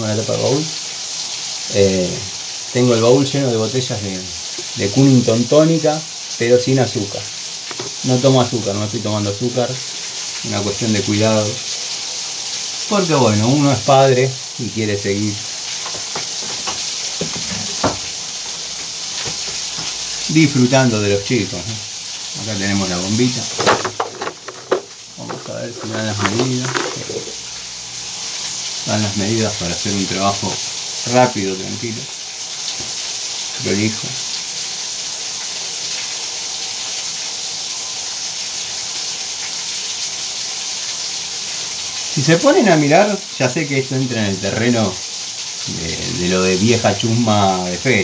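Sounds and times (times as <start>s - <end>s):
water rushing from pipe: 0.0s - 48.0s.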